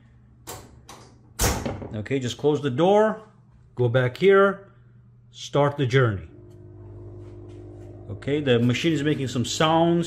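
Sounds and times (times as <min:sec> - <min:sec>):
door closing with a thud: 0:01.4 - 0:02.0.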